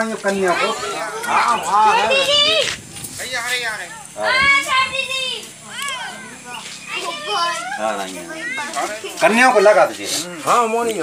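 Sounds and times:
high-pitched voices calling out: 0.4 - 3.0, 3.7 - 9.2.

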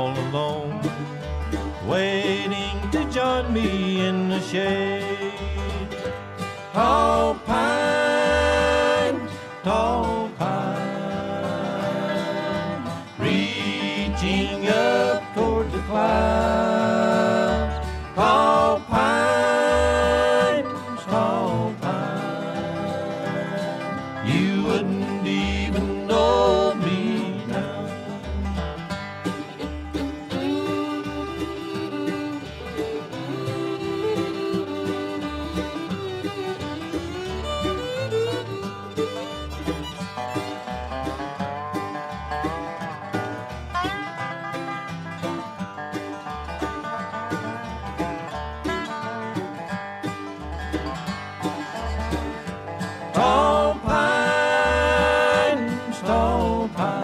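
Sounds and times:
banjo: 0.0 - 57.0
fiddle: 0.0 - 57.0
guitar: 0.0 - 57.0
upright bass: 0.0 - 57.0.

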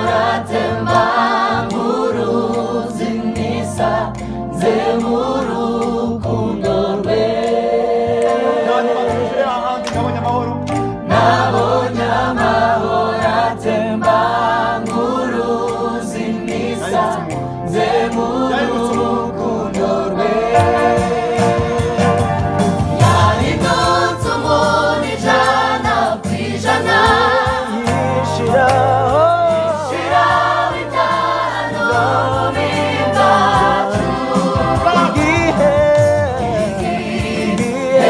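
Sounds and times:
electronic keyboard chords: 0.0 - 38.0
gospel choir singing: 0.0 - 38.0.

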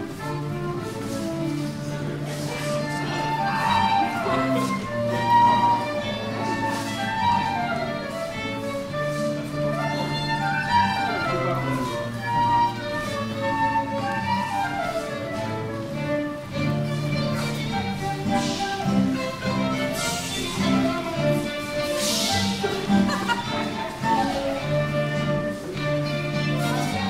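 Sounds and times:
fiddle and flute melody: 0.0 - 27.0.

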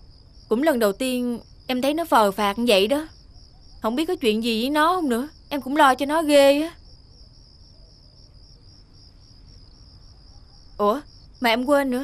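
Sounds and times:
crickets chirping: 0.0 - 12.0.

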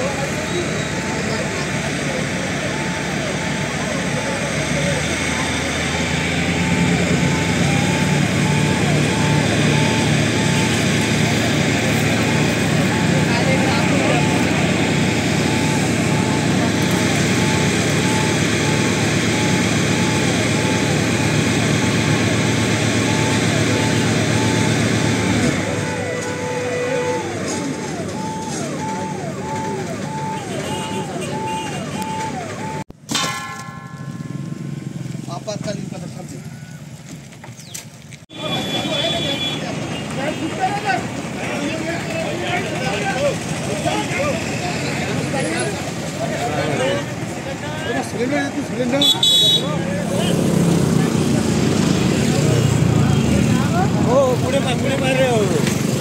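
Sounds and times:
electronic siren yelping: 0.0 - 32.9
engine and pump rumbling: 0.0 - 56.0.

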